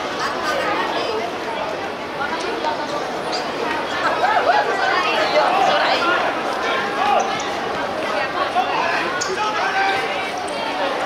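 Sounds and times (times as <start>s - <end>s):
players shouting: 4.0s - 11.0s.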